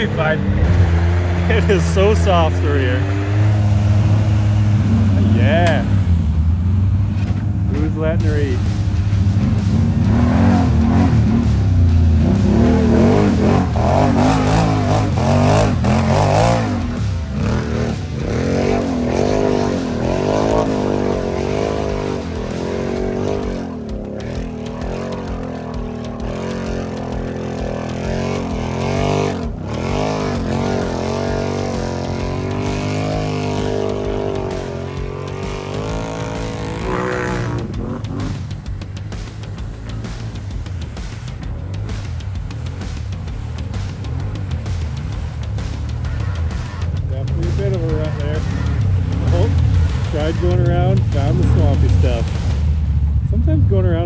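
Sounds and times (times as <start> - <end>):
atv engine revving: 0.0 - 54.0.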